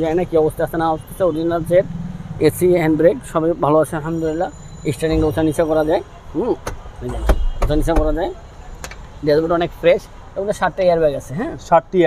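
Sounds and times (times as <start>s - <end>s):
man talking: 2.4s - 8.4s.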